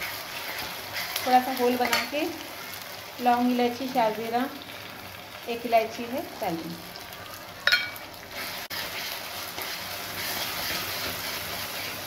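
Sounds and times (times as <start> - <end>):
spatula stirring in metal pan: 0.0 - 2.2, 8.3 - 12.0
food sizzling in hot oil: 0.0 - 12.0.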